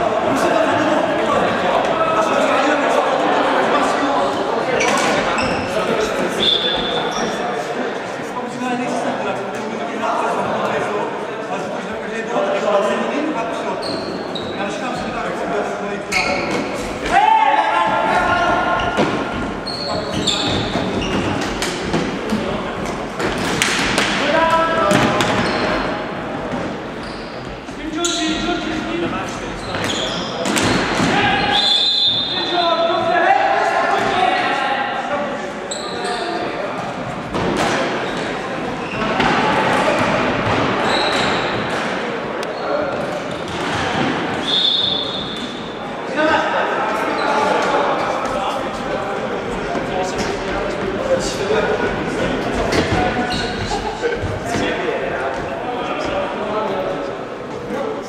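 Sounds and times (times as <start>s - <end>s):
players shouting: 16.2s - 21.2s.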